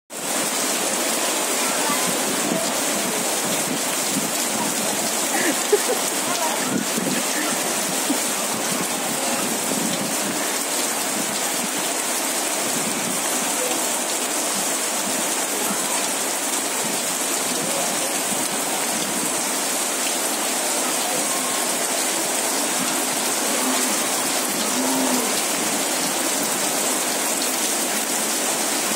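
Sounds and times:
heavy rain splashing into puddles: 0.1 - 28.9.

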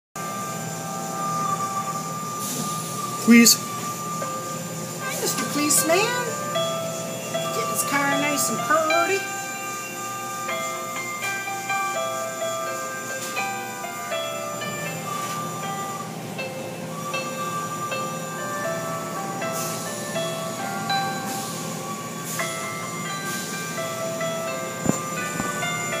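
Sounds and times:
chime-like melody: 0.2 - 26.0.

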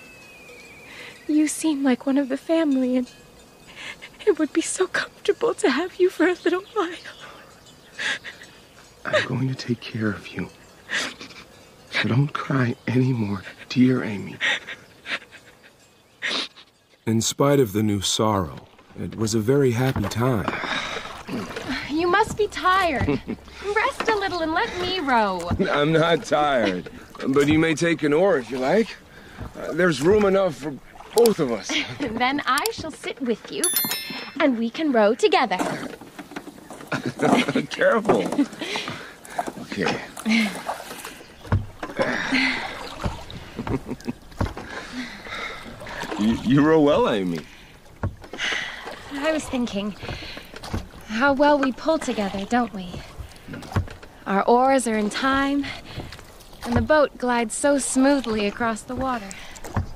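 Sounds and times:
oars rowing through water: 0.0 - 59.9
oar knocking: 19.8 - 27.7, 29.2 - 31.4, 41.4 - 44.9, 45.8 - 54.2, 55.4 - 57.1, 58.0 - 59.9.

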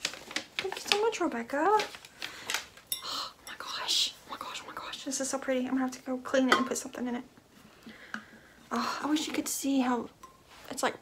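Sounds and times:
woman whispering: 3.0 - 5.4.

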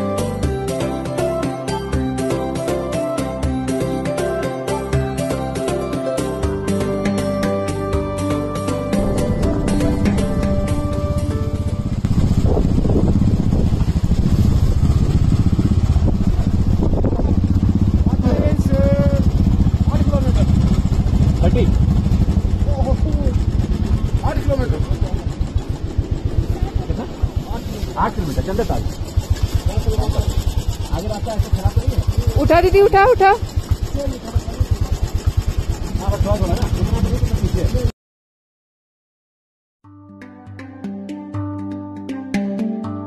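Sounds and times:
motorcycle engine running: 8.0 - 37.9
voices speaking: 26.4 - 35.1.

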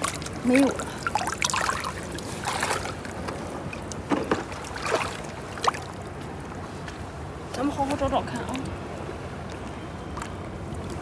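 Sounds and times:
water splashing and dripping: 0.0 - 6.3.

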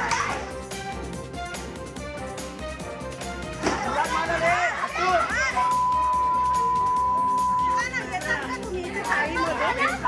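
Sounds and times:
background music: 0.0 - 10.0
women shouting and shrieking: 3.9 - 5.9
steady high beep tone: 5.6 - 7.9.

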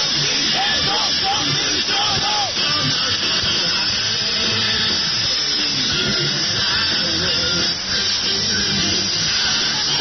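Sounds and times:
loud guitar music: 0.0 - 10.0.

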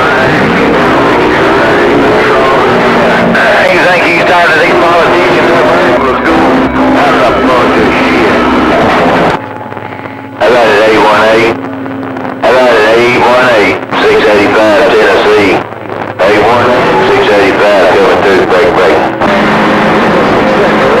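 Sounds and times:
distorted radio voices: 0.0 - 21.0
radio static: 0.0 - 21.0
steady hum tone: 0.0 - 21.0.

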